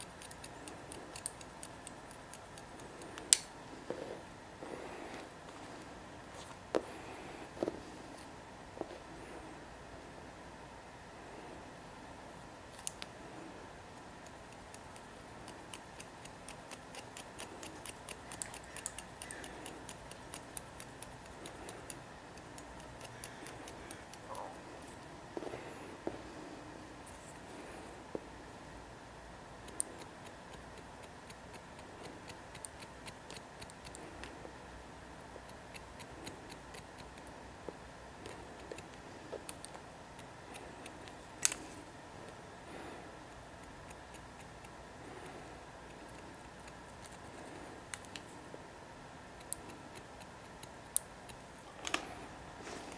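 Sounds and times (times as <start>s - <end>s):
shears snipping hair: 0.0s - 3.5s, 14.2s - 24.4s, 35.4s - 37.3s
comb strokes: 0.0s - 9.5s, 12.7s - 28.3s, 49.3s - 52.9s.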